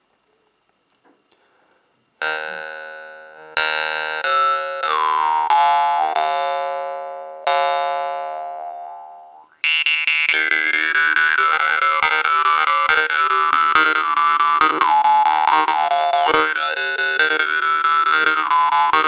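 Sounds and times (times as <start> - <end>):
jaw harp twanging: 8.8 - 13.8.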